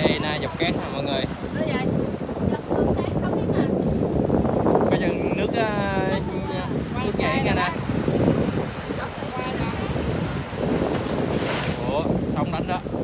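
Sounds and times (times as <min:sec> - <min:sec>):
surf washing onto shore: 0:00.0 - 0:13.0
wind buffeting microphone: 0:00.0 - 0:13.0.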